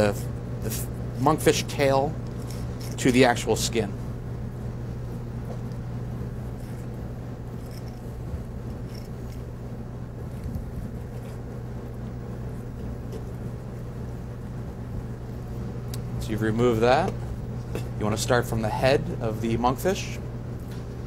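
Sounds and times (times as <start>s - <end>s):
machinery hum: 0.0s - 21.0s
knife scraping fish: 7.6s - 8.1s.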